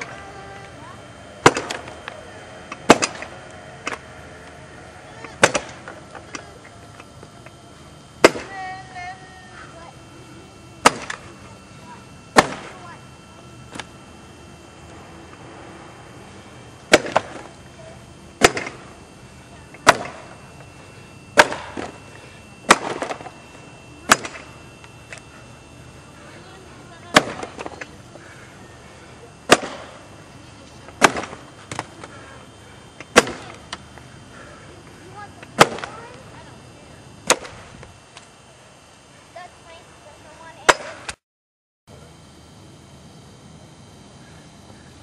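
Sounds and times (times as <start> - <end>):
axe chopping log: 1.4 - 1.9, 5.4 - 5.8, 8.2 - 8.5, 10.8 - 11.2, 12.4 - 12.7, 16.9 - 17.4, 18.4 - 18.8, 19.8 - 20.2, 21.4 - 21.9, 22.7 - 23.2, 24.1 - 24.4, 29.5 - 29.9, 31.0 - 31.9, 33.1 - 33.5, 35.6 - 35.9, 37.2 - 37.5, 40.7 - 41.2.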